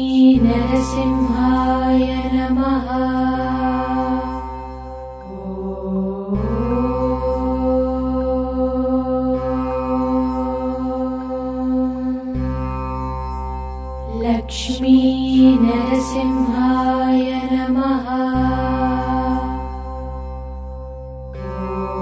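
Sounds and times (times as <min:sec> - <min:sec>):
mantra chanting: 0:00.0 - 0:04.4, 0:05.3 - 0:12.5
steady drone: 0:00.0 - 0:22.0.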